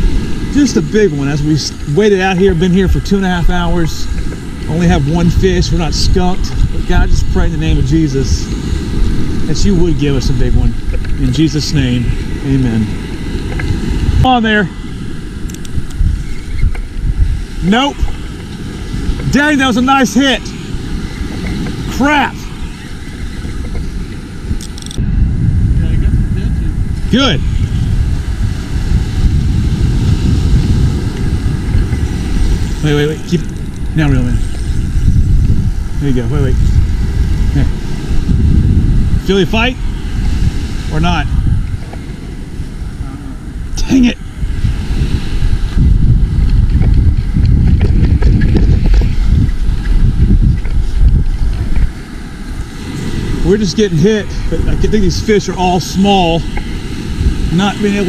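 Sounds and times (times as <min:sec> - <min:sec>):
surf: 0:00.0 - 0:58.0
wind rumbling on microphone: 0:00.0 - 0:58.0.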